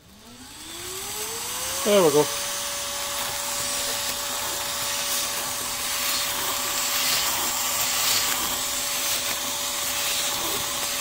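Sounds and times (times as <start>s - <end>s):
blower whine: 0.0s - 11.0s
rush of air: 3.4s - 11.0s.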